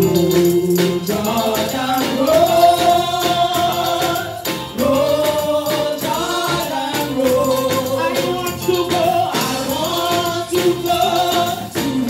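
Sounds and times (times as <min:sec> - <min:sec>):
steady percussion beat: 0:00.0 - 0:12.0
vocal group singing a hymn: 0:00.0 - 0:12.0.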